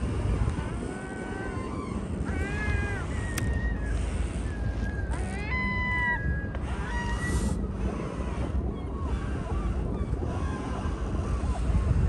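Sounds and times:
low wind rumble: 0.0s - 12.0s
gull calling: 0.7s - 11.9s.

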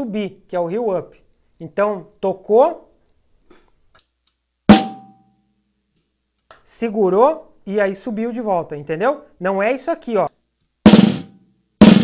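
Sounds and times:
snare drum hit: 4.7s - 5.2s, 10.9s - 12.0s.

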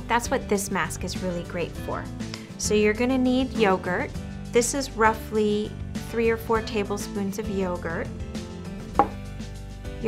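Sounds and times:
bowl knocking on tabletop: 9.0s - 9.2s.

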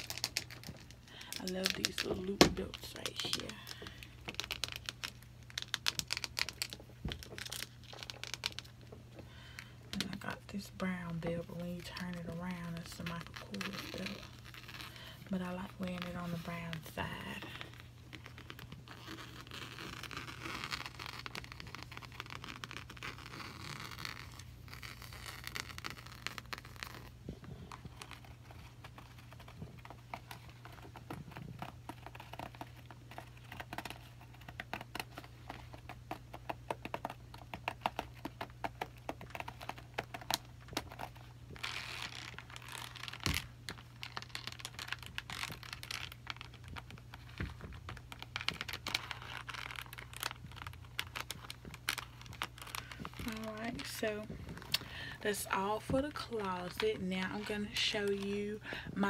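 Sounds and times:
soft rustling and rubbing: 0.0s - 59.0s
fingernails clicking on bag: 17.2s - 55.2s.

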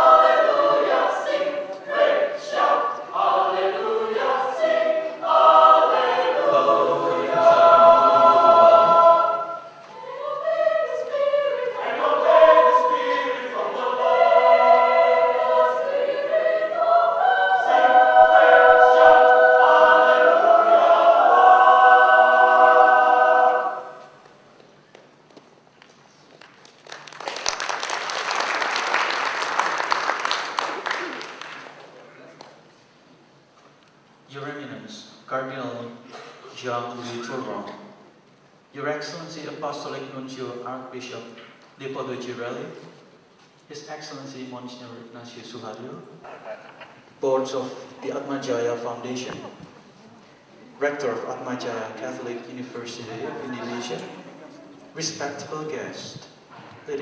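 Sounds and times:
choir singing held chords: 0.0s - 24.4s
applause: 26.3s - 32.6s.

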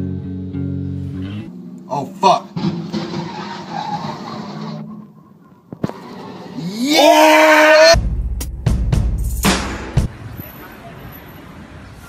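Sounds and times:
truck engine and skidding tyres: 2.2s - 6.7s
sharp knocks: 2.5s - 3.4s.

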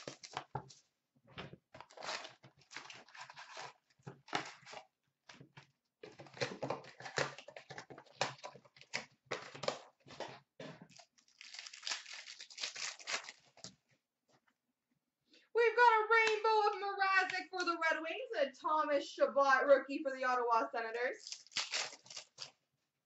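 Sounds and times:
card pack wrappers crinkling and tearing: 0.0s - 0.5s, 1.8s - 4.8s, 6.0s - 10.3s, 10.9s - 13.8s, 21.2s - 22.6s.

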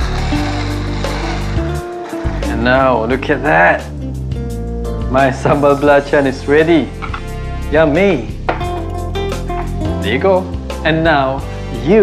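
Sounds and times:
background music with held tones: 0.0s - 12.0s
steady bass: 0.0s - 12.0s.

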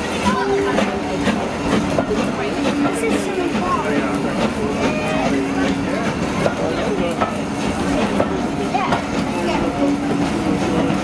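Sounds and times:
train wheels clicking over rail joints: 0.0s - 11.0s.

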